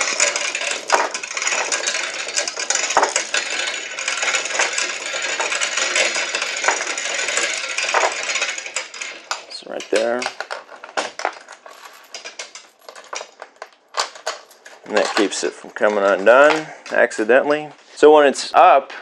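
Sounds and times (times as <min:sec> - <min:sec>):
hoist chain rattling: 0:00.0 - 0:16.5.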